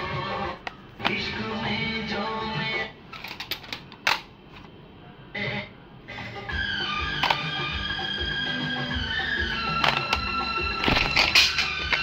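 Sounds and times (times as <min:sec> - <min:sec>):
plastic cassette cases clicking: 0:07.2 - 0:07.4, 0:09.6 - 0:12.0.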